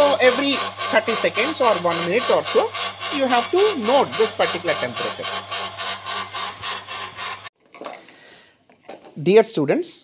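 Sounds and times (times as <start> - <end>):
electric stirrer motor humming: 0.0 - 7.5
rhythmic rubbing pulse: 0.0 - 7.5.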